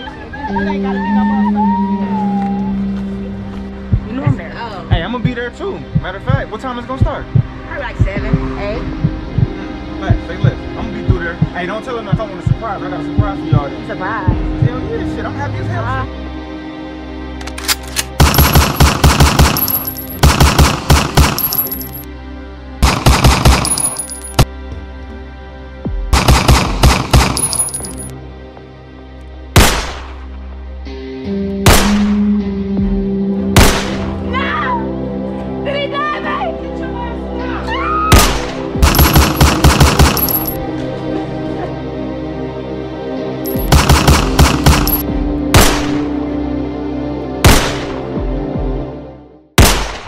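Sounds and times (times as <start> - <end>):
background music: 0.0 - 50.0
rapid gunshots: 18.2 - 21.5, 22.8 - 23.7, 26.1 - 27.4, 29.6 - 30.1, 38.2 - 40.3, 43.6 - 45.0, 49.6 - 50.0
handgun gunfire bursts: 18.2 - 21.8, 38.8 - 40.6, 43.6 - 45.0.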